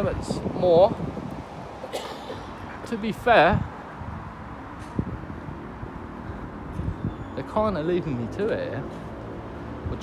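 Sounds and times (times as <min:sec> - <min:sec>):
wind on microphone: 0:00.0 - 0:01.8, 0:02.5 - 0:07.8
distant traffic hum: 0:00.0 - 0:10.0.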